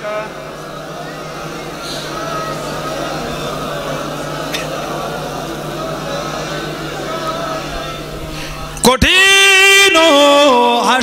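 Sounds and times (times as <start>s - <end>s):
faint indistinct voices: 0.0s - 9.4s
public-address system hum: 0.0s - 11.0s.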